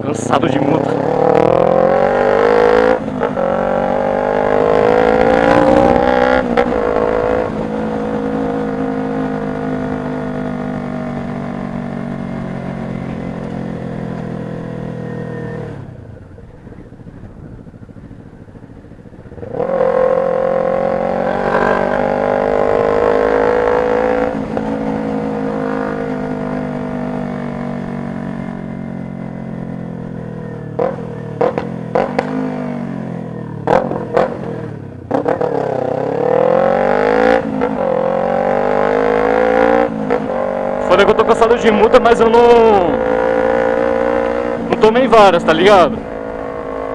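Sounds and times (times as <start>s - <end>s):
motorcycle engine revving: 0.0s - 46.9s.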